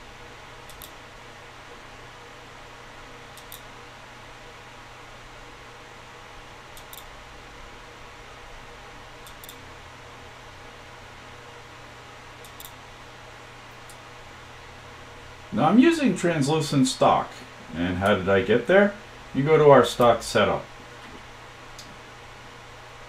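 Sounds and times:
room and computer hum: 0:00.0 - 0:23.0.

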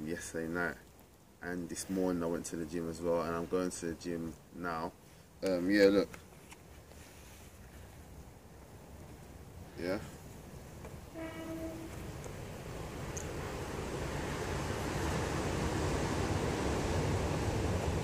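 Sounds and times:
short horn note: 0:11.1 - 0:12.0.

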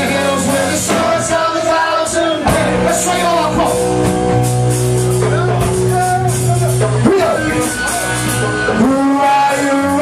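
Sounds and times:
bass guitar: 0:00.0 - 0:10.0
drum kit: 0:00.0 - 0:10.0.

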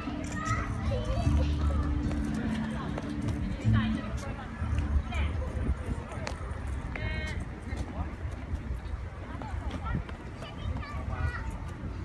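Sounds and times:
children calling and playing: 0:00.0 - 0:12.0.

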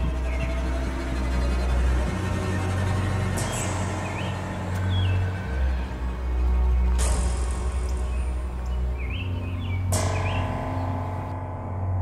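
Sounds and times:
low film score drone: 0:00.0 - 0:12.0
bird chirps: 0:03.4 - 0:05.9, 0:07.8 - 0:11.3.

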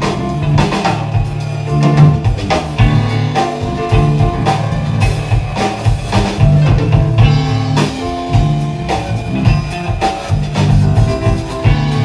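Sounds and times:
bass guitar: 0:00.0 - 0:12.0
drum kit hits: 0:00.0 - 0:12.0
electric guitar: 0:00.0 - 0:12.0
keyboards: 0:00.0 - 0:12.0.

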